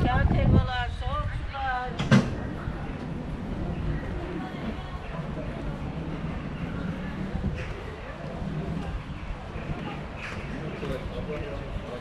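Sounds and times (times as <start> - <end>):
low street murmur: 0.0 - 12.0.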